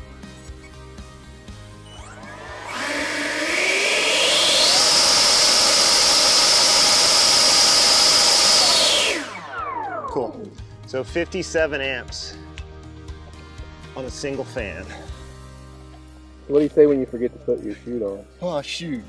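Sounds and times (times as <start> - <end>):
electric fan high-pitched whine: 2.0 - 10.6.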